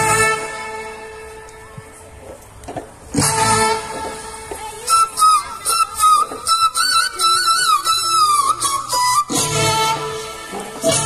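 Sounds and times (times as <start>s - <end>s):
flute-like melody: 0.0s - 2.2s, 3.1s - 11.0s
folk dance music over loudspeakers: 0.0s - 11.0s.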